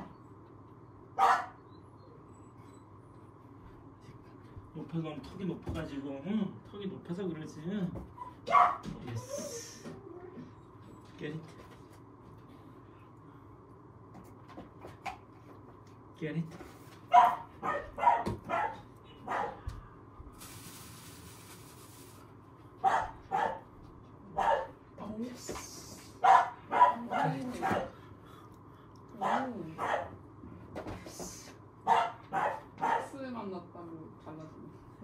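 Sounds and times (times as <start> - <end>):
puppy yapping: 1.2 - 1.8, 8.2 - 8.9, 17.1 - 19.6, 22.8 - 23.6, 26.2 - 27.9, 31.9 - 33.1.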